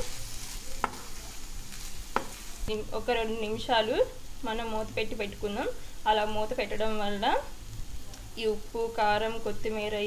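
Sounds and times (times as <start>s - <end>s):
rice sizzling in a hot pan: 0.0s - 10.0s.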